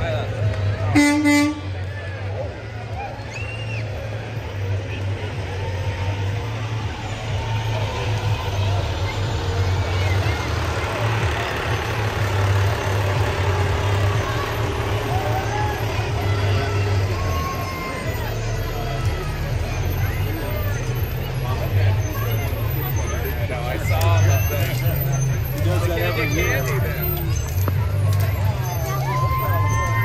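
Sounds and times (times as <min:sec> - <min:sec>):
diesel truck engine rumbling: 0:00.0 - 0:30.0
spectators chattering: 0:00.0 - 0:30.0.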